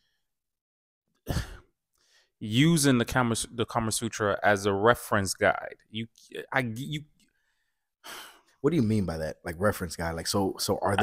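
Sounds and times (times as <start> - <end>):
man sighing: 1.3 - 1.6.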